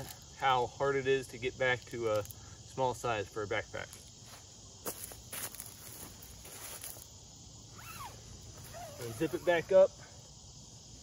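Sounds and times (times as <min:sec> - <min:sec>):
insects chirring: 0:00.0 - 0:11.0
footsteps on dry leaves: 0:03.9 - 0:07.1.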